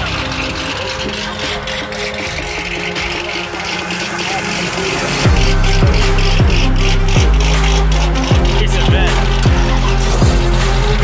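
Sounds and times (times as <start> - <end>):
car engines idling: 0.0 - 11.0.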